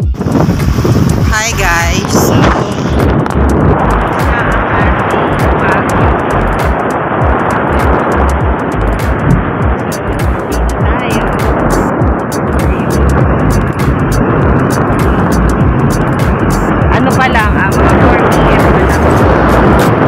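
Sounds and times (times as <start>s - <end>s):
music: 0.0s - 20.0s
wind buffeting microphone: 0.0s - 20.0s.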